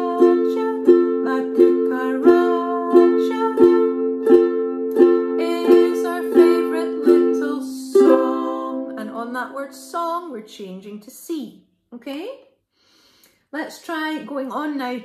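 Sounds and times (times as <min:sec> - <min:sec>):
woman singing: 0:00.0 - 0:04.2, 0:05.0 - 0:11.0
ukulele strumming: 0:00.0 - 0:10.3.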